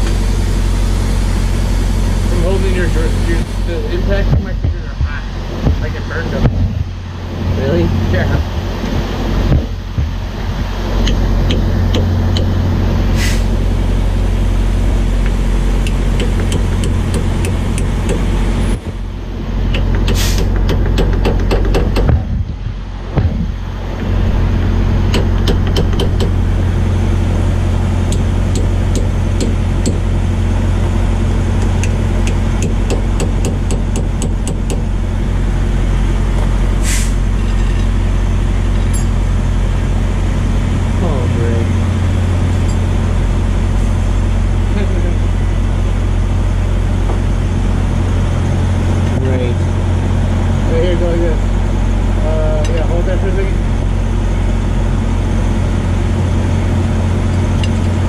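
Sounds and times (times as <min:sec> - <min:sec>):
diesel truck engine idling: 0:00.0 - 0:58.0
hammer tapping on metal: 0:19.7 - 0:22.2, 0:25.1 - 0:26.3, 0:31.7 - 0:34.8.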